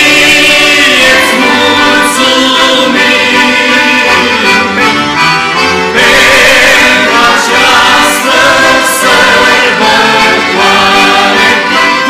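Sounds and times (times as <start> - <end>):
accordions: 0.0 - 12.0
choir singing a hymn: 0.0 - 12.0.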